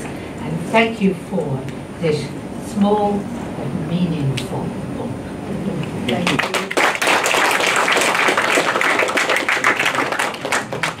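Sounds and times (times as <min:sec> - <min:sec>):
audience applauding: 0:06.2 - 0:11.0.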